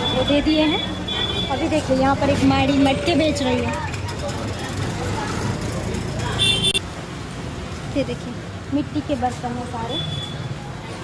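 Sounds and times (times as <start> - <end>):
street traffic hum: 0.0 - 11.0.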